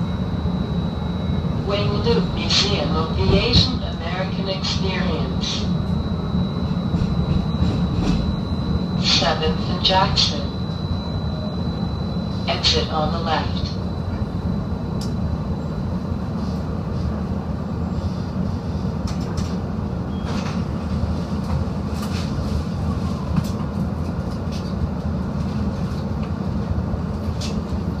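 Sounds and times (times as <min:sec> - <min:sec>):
streetcar low rumble: 0:00.0 - 0:28.0.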